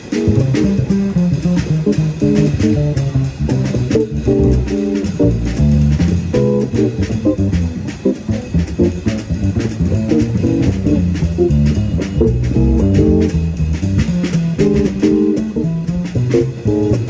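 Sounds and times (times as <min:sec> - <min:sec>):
bass: 0:00.0 - 0:17.0
drum kit with cymbals: 0:00.0 - 0:17.0
electric guitar fast single notes: 0:00.0 - 0:17.0.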